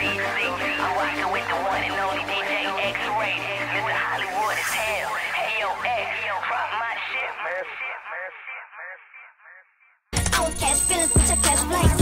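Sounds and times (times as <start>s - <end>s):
hip-hop track: 0.0s - 12.0s.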